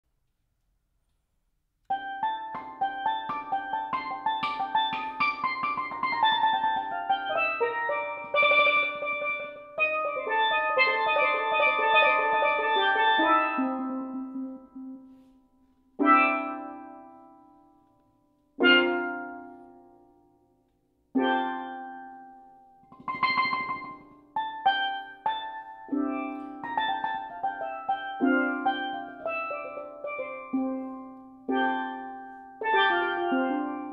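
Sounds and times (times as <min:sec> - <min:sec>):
steelpan notes ringing: 0:01.9 - 0:17.8, 0:21.2 - 0:33.9.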